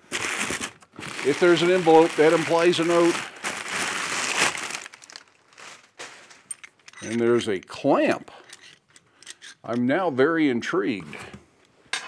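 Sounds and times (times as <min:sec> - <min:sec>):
packing paper crinkling: 0:00.0 - 0:06.8.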